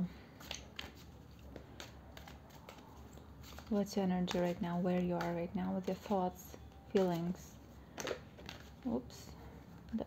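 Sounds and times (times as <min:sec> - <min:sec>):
cards being shuffled: 0:00.3 - 0:09.1.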